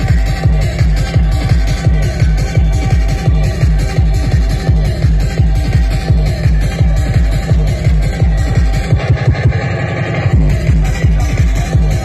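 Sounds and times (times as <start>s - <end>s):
fast tekno music over sound system: 0.0s - 12.0s
rapid kick drum: 0.0s - 12.0s.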